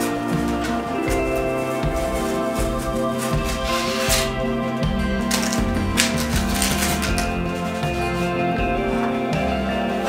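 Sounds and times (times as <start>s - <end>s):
instrumental background music: 0.0s - 10.0s
tape ripping off wood: 5.3s - 7.4s.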